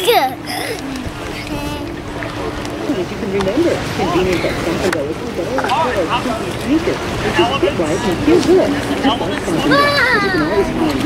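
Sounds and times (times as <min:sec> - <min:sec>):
children chattering and calling out: 0:00.0 - 0:03.0, 0:07.9 - 0:11.0.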